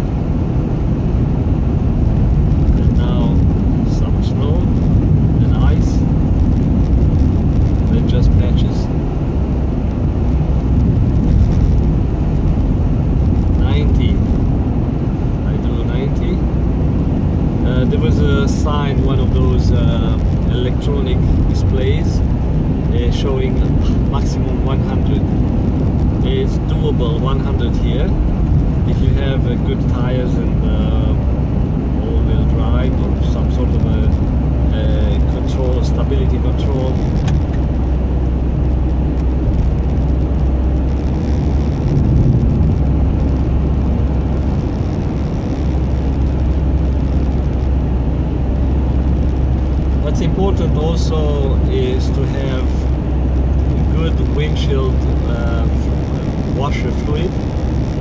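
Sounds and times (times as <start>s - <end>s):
car road and engine rumble: 0.0s - 58.0s.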